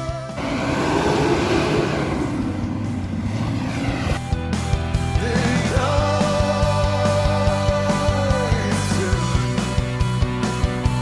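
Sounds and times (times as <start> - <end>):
rock music: 0.0 - 11.0
engine revving under load: 0.3 - 5.9.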